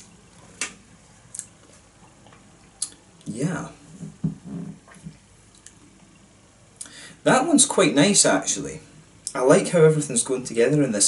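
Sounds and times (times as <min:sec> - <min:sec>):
faint mouth clicks: 0:02.8 - 0:03.0.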